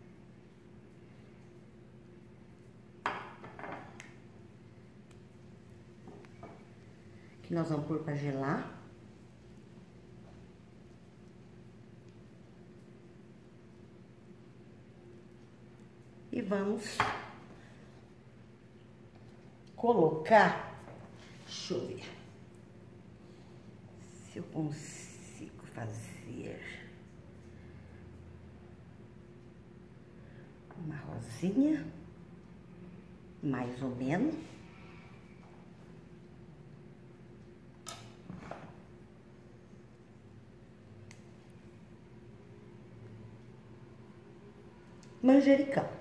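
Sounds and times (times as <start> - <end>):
low steady hum: 0.0 - 46.0.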